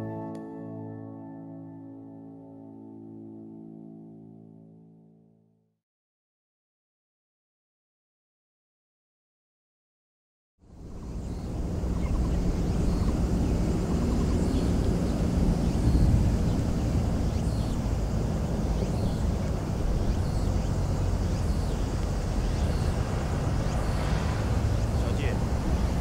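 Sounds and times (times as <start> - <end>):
steady low rumble: 10.7 - 26.0.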